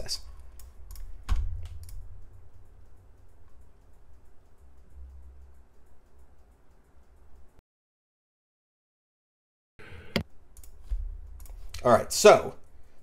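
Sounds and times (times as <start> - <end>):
keyboard and mouse clicks: 0.4 - 7.6, 10.1 - 11.9.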